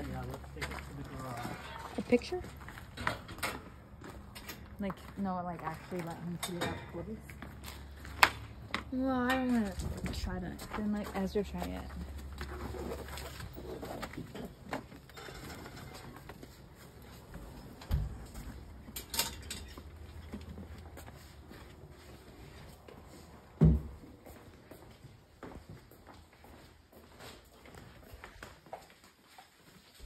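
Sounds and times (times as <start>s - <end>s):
footsteps: 0.0s - 30.0s.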